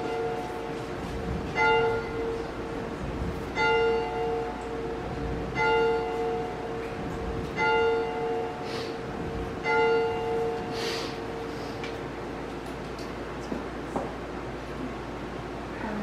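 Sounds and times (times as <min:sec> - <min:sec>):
church bell ringing: 0:00.0 - 0:02.9, 0:03.5 - 0:11.6.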